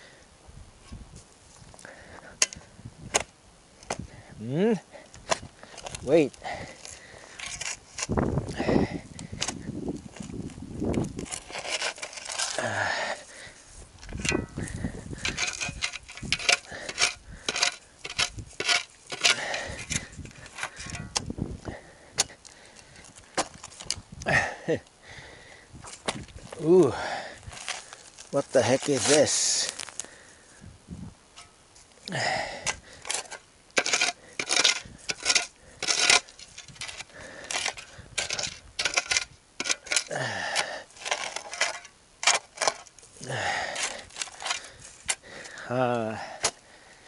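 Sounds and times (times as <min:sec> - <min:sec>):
shovel scraping gravelly soil: 0:05.2 - 0:21.3, 0:25.8 - 0:30.2, 0:31.3 - 0:46.7
shovel clinking on stones: 0:14.0 - 0:14.6, 0:15.2 - 0:21.2, 0:32.6 - 0:43.0.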